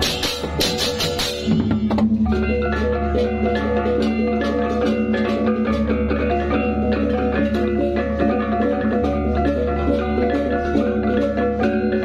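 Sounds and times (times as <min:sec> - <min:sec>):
drums: 0:00.0 - 0:12.0
hand cymbals clashing: 0:00.0 - 0:12.0.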